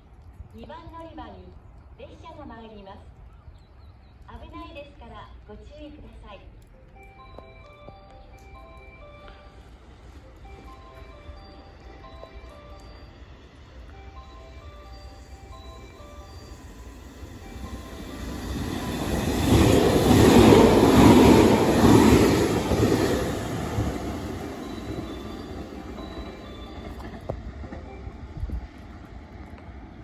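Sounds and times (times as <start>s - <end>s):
electric train passing: 6.6s - 30.0s.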